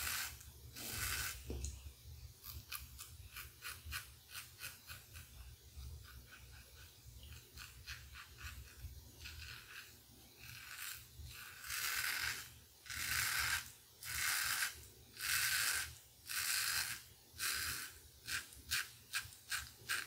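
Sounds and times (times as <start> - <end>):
razor scraping stubble: 0.0 - 1.7, 2.4 - 20.0.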